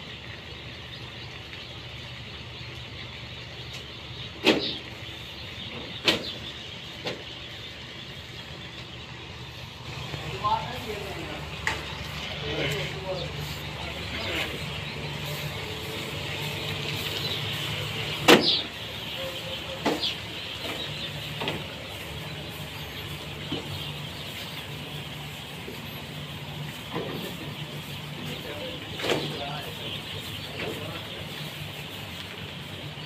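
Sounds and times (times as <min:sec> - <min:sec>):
chicks peeping: 0:00.0 - 0:33.0.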